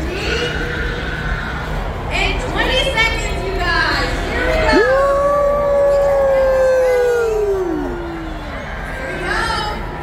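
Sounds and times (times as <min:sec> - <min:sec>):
person cheering woooo: 0:04.7 - 0:08.4.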